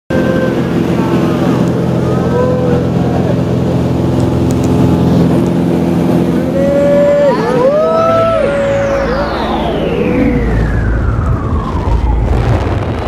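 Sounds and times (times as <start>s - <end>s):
propeller plane engine droning: 0.1s - 13.0s
high gliding calls: 6.4s - 12.0s.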